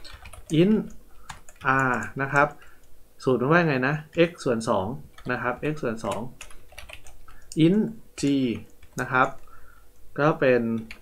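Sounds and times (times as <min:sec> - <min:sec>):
computer keyboard typing: 0:00.0 - 0:02.6, 0:05.1 - 0:09.5, 0:10.7 - 0:11.0
person speaking: 0:00.0 - 0:11.0.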